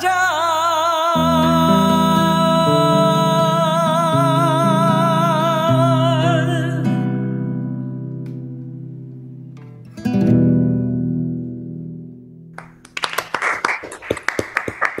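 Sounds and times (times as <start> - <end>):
person singing with vibrato: 0.0 - 7.6
guitar: 0.0 - 13.3
strummed guitar chord: 1.2 - 12.5.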